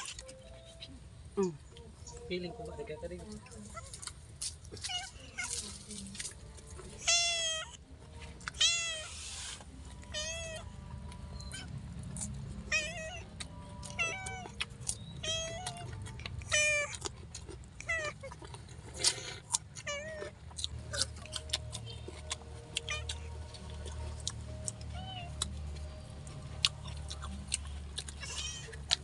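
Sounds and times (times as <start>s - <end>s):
cat meowing: 4.8s - 5.6s, 7.0s - 7.8s, 8.5s - 9.2s, 10.0s - 10.7s, 11.4s - 11.7s, 12.7s - 14.6s, 15.2s - 17.0s, 17.8s - 18.5s, 19.8s - 20.4s, 22.8s - 23.3s, 24.9s - 25.5s, 28.2s - 28.9s
chewing clicks: 13.2s - 29.0s.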